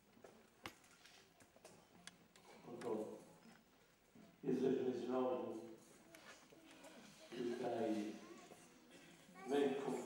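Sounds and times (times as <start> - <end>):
man speaking: 9.5 - 10.0.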